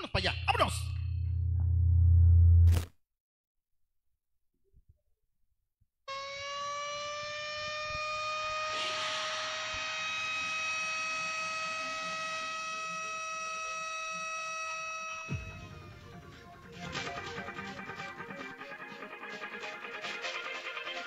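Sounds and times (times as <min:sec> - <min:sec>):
siren-like electronic tone: 0:06.1 - 0:16.2.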